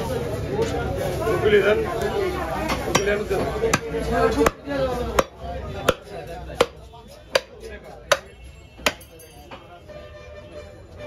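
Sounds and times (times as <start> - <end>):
chopper chopping meat on block: 2.7 - 9.1.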